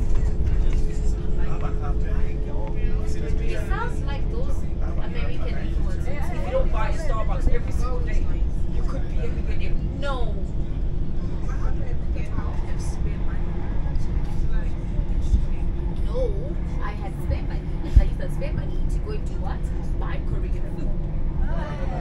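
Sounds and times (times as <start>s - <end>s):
faint passenger voices: 0.0s - 22.0s
train carriage rumble: 0.0s - 22.0s.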